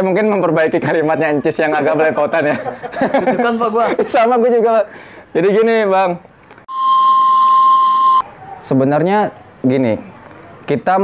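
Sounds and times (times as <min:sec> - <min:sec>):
steamer steam whistle: 0:06.7 - 0:08.2.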